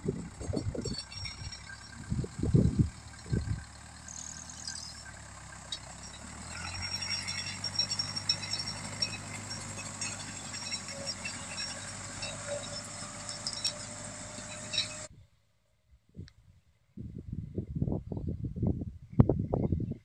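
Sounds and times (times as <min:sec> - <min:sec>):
tractor diesel engine under load: 0:00.0 - 0:15.1.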